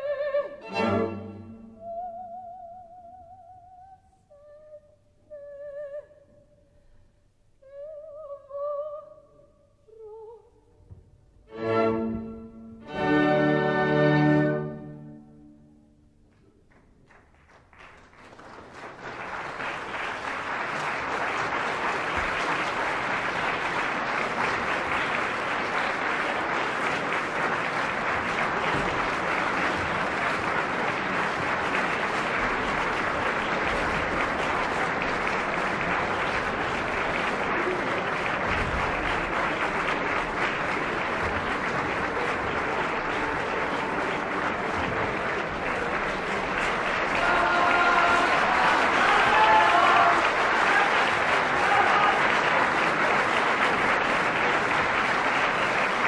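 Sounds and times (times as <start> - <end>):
audience applauding: 16.3 - 56.0.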